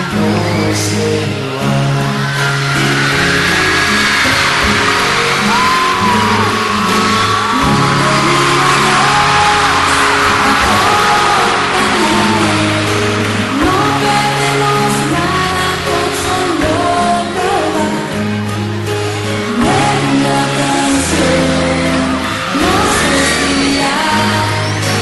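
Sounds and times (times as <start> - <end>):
audience screaming and cheering: 0.0 - 25.0
live pop band music: 0.0 - 25.0.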